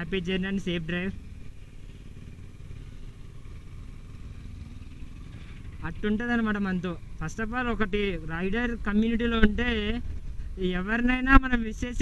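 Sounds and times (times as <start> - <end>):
motorcycle engine rumbling: 0.0 - 12.0.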